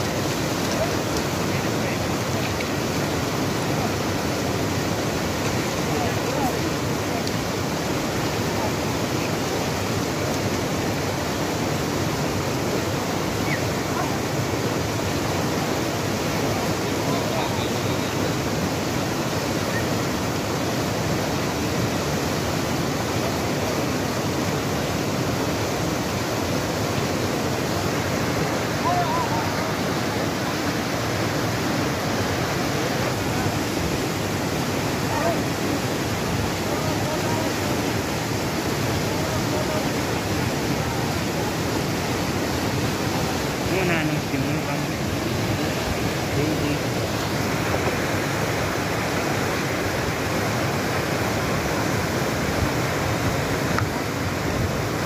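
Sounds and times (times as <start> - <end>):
river rushing over stones: 0.0 - 55.0.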